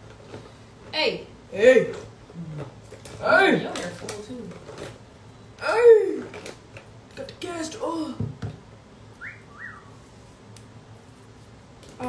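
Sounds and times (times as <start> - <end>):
whistle-like chirps: 9.2 - 10.0.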